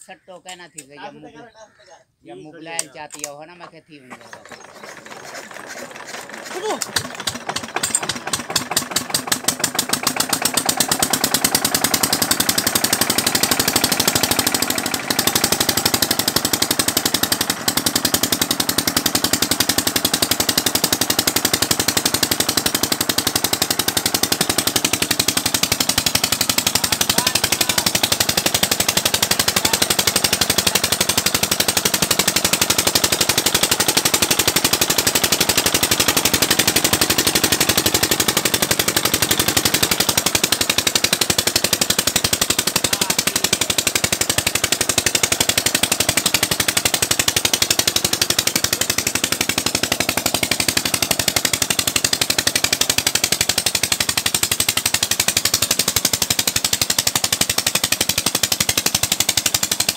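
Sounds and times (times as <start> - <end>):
diesel engine knocking: 2.7 - 59.9.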